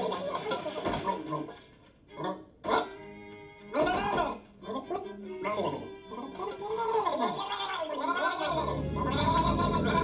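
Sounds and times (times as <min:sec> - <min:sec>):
cartoon animal-like vocal sounds: 0:03.8 - 0:10.0.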